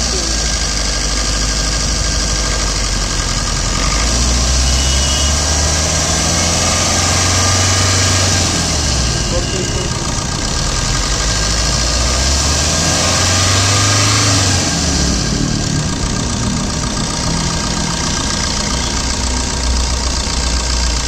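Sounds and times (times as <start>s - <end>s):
diesel engine idling: 0.0s - 21.0s.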